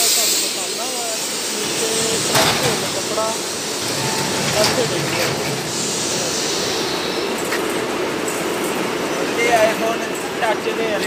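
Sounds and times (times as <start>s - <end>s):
textile machinery rumbling: 0.5s - 10.1s.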